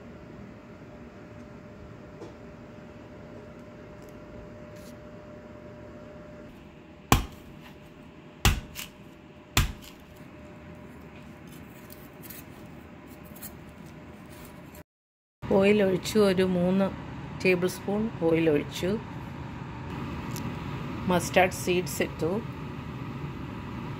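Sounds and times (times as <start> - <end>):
knife chopping coconut husk: 7.1 - 7.8, 8.4 - 9.0, 9.6 - 10.1.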